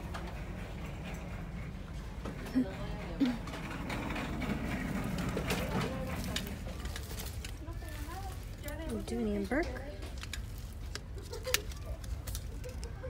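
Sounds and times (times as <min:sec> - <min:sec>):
faint voices talking: 0:02.3 - 0:13.0.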